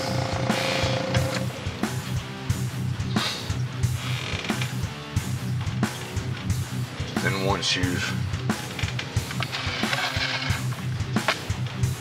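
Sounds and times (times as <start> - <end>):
music with guitar and drums: 0.0 - 12.0.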